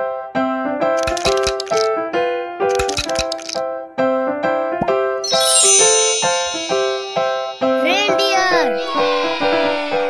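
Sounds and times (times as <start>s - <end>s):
shaker rattling: 1.0s - 1.9s, 2.7s - 3.6s, 5.8s - 7.9s
keyboard melody: 4.8s - 9.3s.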